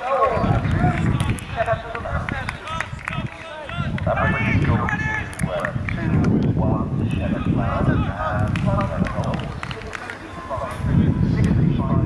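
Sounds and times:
man talking: 0.0s - 12.0s
wind on microphone: 0.0s - 12.0s.

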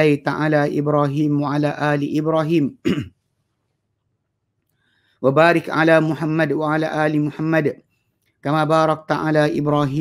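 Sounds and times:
man speaking: 0.0s - 3.1s, 5.2s - 10.0s.

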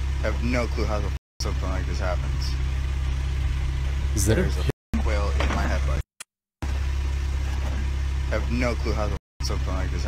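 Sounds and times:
car engine idling: 0.0s - 6.0s, 6.6s - 10.0s.

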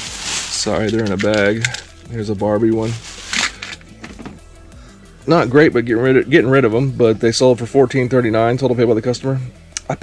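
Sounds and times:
plastic bag crinkling: 0.0s - 2.0s, 2.8s - 3.9s
quiet background music: 0.0s - 10.0s.

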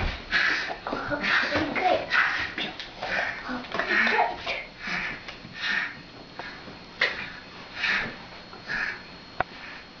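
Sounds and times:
cockatoo huffing: 0.3s - 9.9s.

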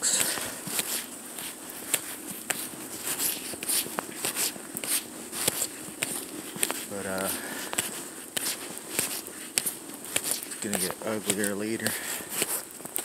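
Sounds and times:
footsteps crunching through snow: 0.0s - 13.0s.

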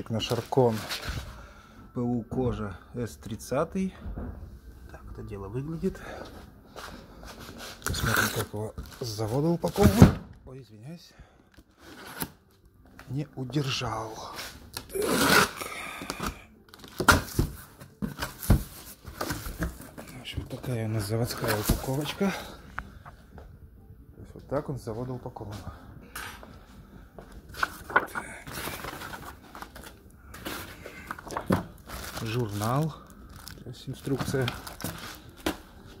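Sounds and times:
cardboard rustling and scraping: 0.2s - 1.4s, 16.8s - 22.6s, 27.5s - 33.0s, 34.0s - 36.0s.

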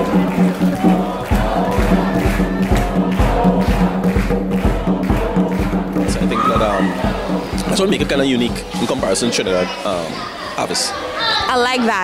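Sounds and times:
hand drum beat: 0.0s - 9.7s
group of voices singing: 0.0s - 12.0s.

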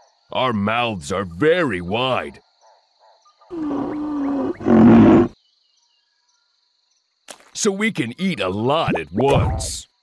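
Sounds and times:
cricket trill: 0.0s - 10.0s
rhinoceros deep rough call: 3.5s - 5.4s.

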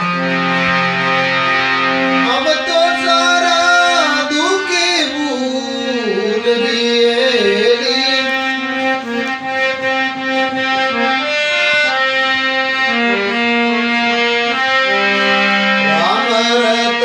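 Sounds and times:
harmonium melody: 0.0s - 17.0s.

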